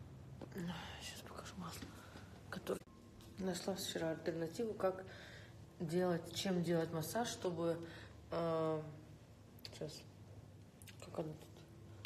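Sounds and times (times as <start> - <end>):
woman speaking softly: 0.4 - 5.0, 5.8 - 10.2, 10.9 - 11.7.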